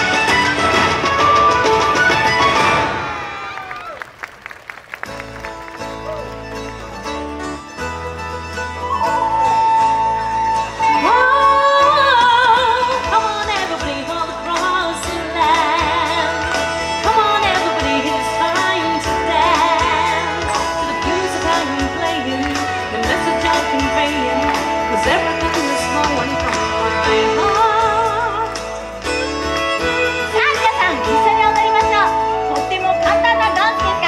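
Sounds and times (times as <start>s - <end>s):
acoustic guitar and fiddle music: 0.0s - 2.8s, 5.0s - 34.0s
drum beats: 0.0s - 3.4s, 12.2s - 34.0s
woman singing with vibrato: 10.8s - 28.6s.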